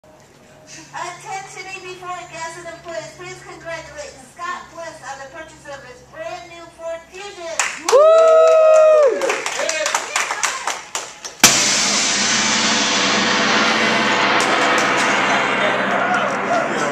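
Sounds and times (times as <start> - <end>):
people talking: 0.8 - 7.6, 15.6 - 16.9
gong struck and ringing: 11.4 - 16.9.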